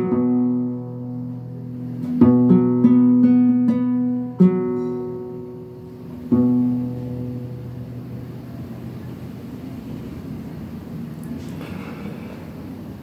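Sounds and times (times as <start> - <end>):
classical guitar chord ringing: 0.0 - 9.5.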